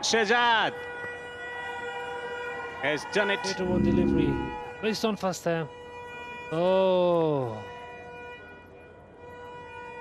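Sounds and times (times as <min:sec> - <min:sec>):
horns sounding held tones: 0:03.5 - 0:04.6.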